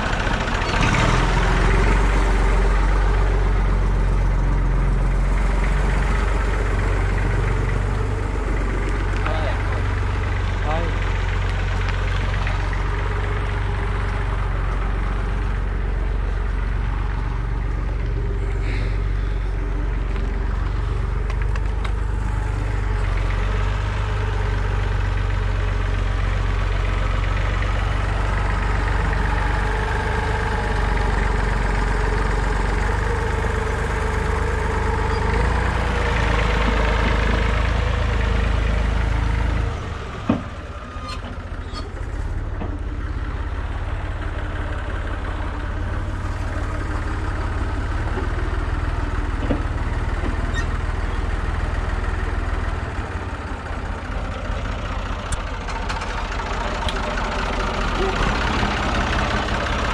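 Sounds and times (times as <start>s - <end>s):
diesel tractor engine idling: 0.0s - 59.9s
motor idling: 0.0s - 59.9s.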